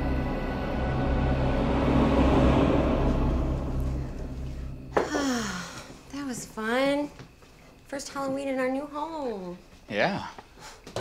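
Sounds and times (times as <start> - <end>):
low rumbling horror drone: 0.0 - 7.0.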